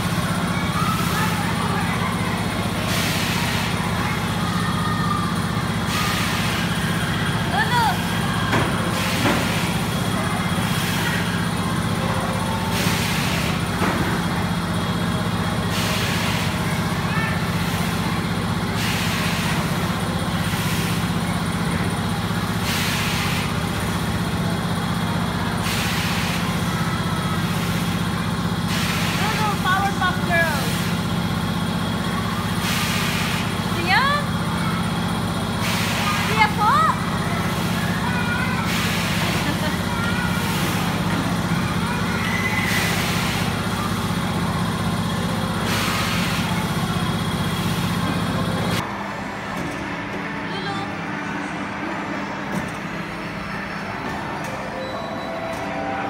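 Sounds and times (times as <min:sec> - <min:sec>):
ride machinery humming: 0:00.0 - 0:56.0.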